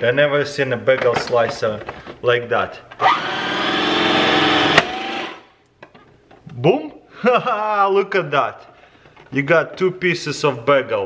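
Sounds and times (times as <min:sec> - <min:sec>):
bagel slicer motor whine: 0:03.0 - 0:05.4.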